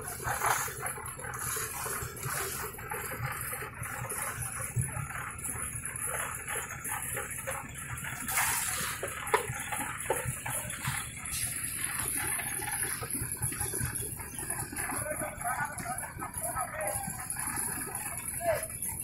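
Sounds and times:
construction site activity: 0.0s - 19.0s.

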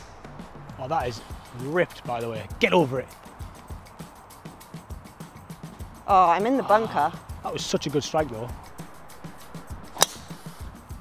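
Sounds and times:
golf club striking ball: 8.6s - 10.6s.

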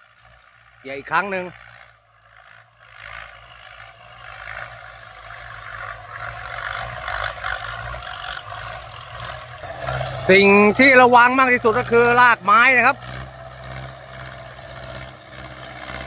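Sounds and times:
tractor engine under load: 0.0s - 16.0s.

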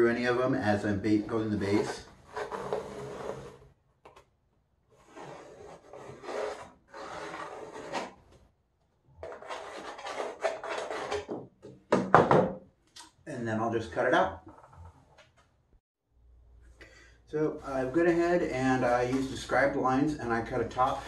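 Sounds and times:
pencil scratching on wood: 5.0s - 8.1s.

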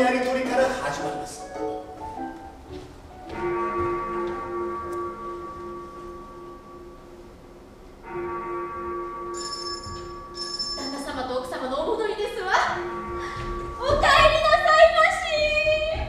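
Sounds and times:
bell struck and ringing: 9.2s - 11.5s
brief high chimes: 9.3s - 11.2s.

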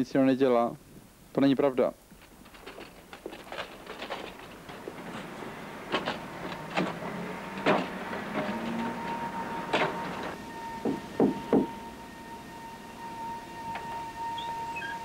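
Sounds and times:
wheelchair knocking on wooden ramp: 2.2s - 11.8s.

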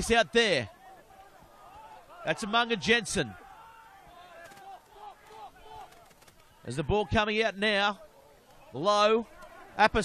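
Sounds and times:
faint indistinct voices: 3.2s - 7.2s, 7.9s - 9.8s.

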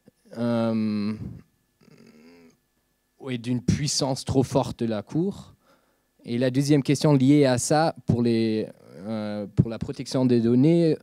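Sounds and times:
short faint vocal sound: 0.2s - 2.6s
man saying hesitant euh: 0.3s - 2.6s, 8.6s - 9.5s.

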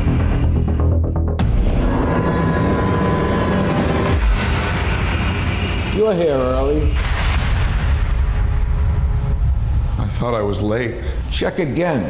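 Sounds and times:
low hit: 4.0s - 11.3s
loud ringing boom: 4.2s - 10.2s.

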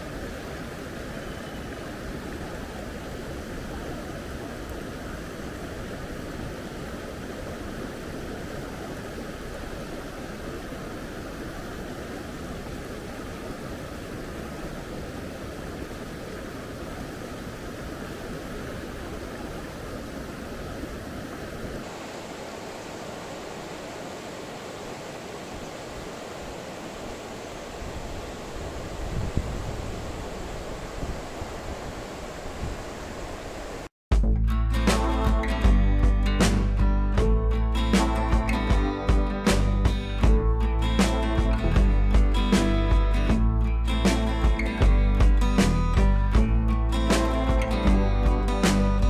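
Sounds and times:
stream rushing over rocks: 0.0s - 33.9s.

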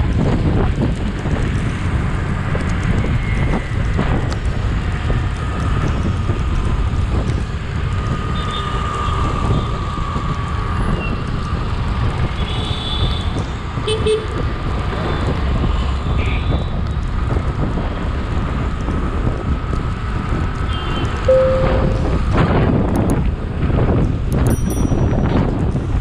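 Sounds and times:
road noise: 0.0s - 26.0s
wind buffeting microphone: 0.0s - 26.0s
short horn beeps: 21.3s - 22.2s.

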